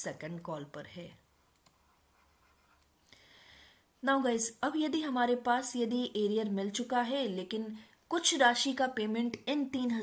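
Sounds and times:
stylus scratching on tablet screen: 0:01.3 - 0:03.0.

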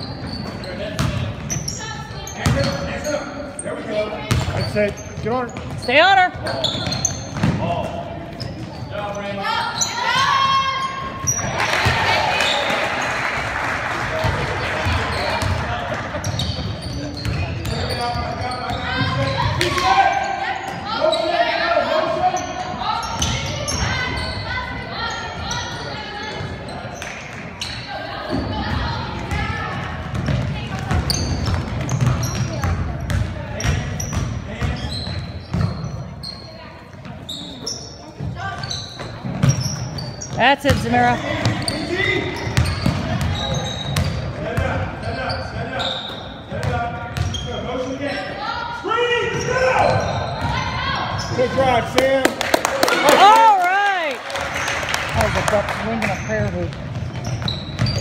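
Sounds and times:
sneakers squeaking: 0:00.0 - 0:52.3, 0:53.9 - 0:58.0.

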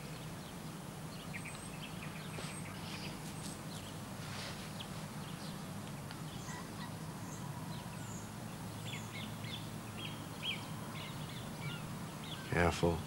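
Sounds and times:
small birds chirping: 0:00.0 - 0:13.0
steady low hum: 0:00.0 - 0:13.0.

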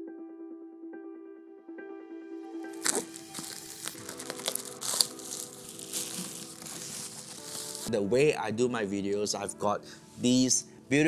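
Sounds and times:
soft music with held notes: 0:00.0 - 0:11.0
plastic bag ripping: 0:02.8 - 0:07.9
plastic bag rustling: 0:02.8 - 0:07.9.

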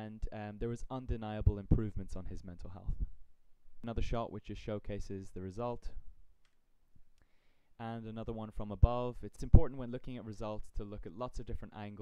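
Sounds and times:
man speaking: 0:00.0 - 0:03.2, 0:03.8 - 0:06.1, 0:07.8 - 0:12.0.

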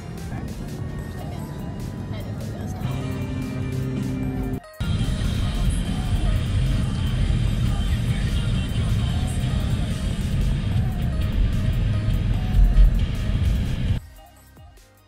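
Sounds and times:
car road and engine rumble: 0:00.0 - 0:14.0
music playing: 0:00.0 - 0:15.0.

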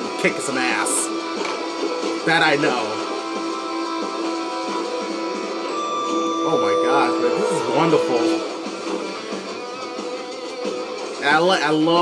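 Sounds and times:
guitar music with held notes: 0:05.8 - 0:09.2.

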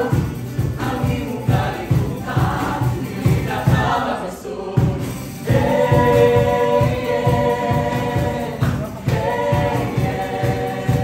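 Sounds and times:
group of voices singing: 0:00.0 - 0:11.0
music with steady beat: 0:00.0 - 0:11.0.

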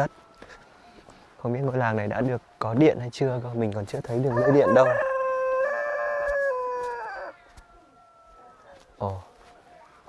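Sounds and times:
rooster crowing: 0:04.2 - 0:08.8.

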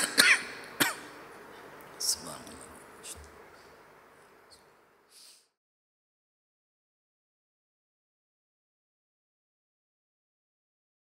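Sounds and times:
man clearing throat: 0:00.0 - 0:01.2.

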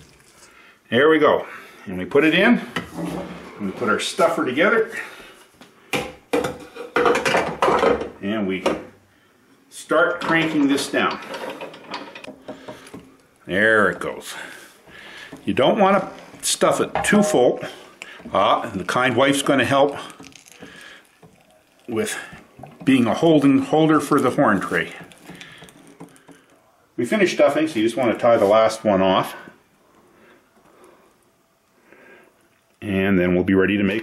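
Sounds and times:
metal scraping and clanking: 0:10.2 - 0:12.4
sausage stuffer gear noise: 0:10.4 - 0:26.7.

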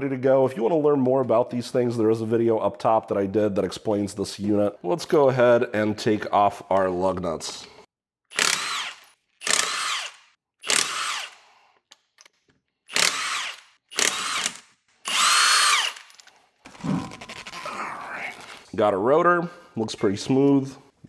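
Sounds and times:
impact wrench whining: 0:08.3 - 0:11.5, 0:12.9 - 0:17.6.

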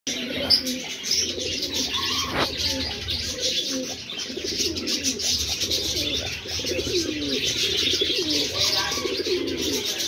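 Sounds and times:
pigeons cooing: 0:00.1 - 0:10.0.

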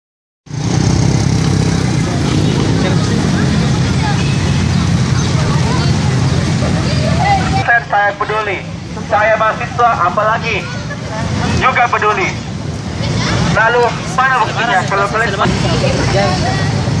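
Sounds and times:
motor traffic rumble: 0:00.5 - 0:17.0.

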